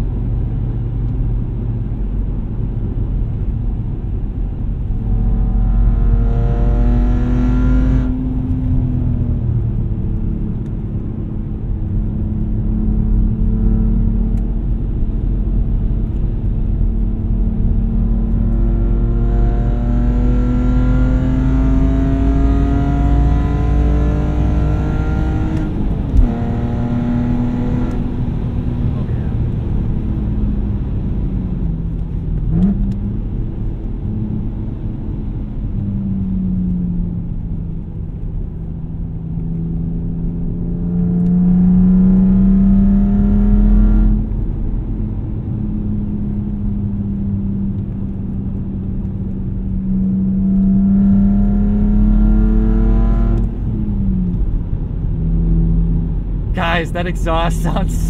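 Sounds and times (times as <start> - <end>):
car exhaust note: 4.3 - 10.3.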